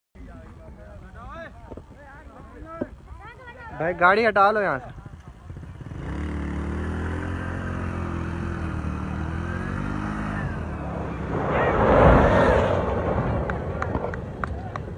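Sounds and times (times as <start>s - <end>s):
car rushing past: 7.8s - 14.9s.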